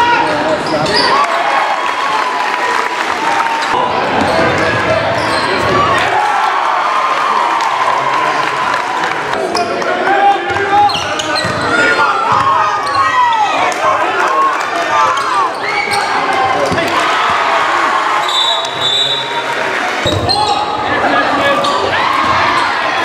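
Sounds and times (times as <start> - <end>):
echoing voices: 0.0 - 23.0
sneakers squeaking on hardwood: 10.8 - 13.1.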